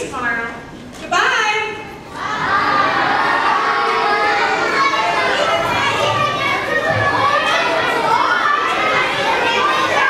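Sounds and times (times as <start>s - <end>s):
children talking and calling out: 1.8s - 10.0s.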